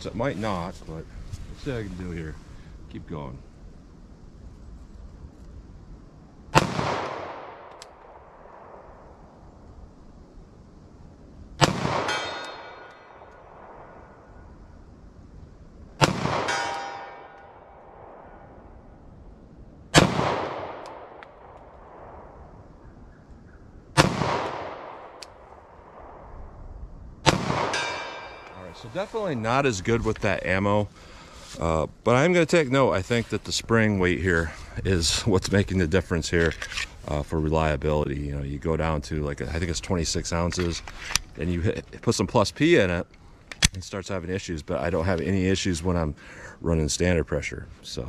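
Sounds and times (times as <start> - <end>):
pistol shots echoing: 6.5 - 7.8, 11.6 - 14.0, 16.0 - 18.4, 19.9 - 22.0, 24.0 - 26.1, 27.2 - 28.6
metallic ring of steel target: 12.0 - 13.2, 16.4 - 17.6, 27.6 - 28.6.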